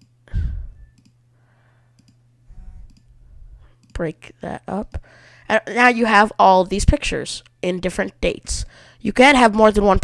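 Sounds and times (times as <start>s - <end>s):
faint low hum: 0.0s - 10.0s
computer mouse clicks: 0.9s - 1.2s, 2.0s - 2.2s, 2.8s - 3.1s, 3.8s - 4.0s.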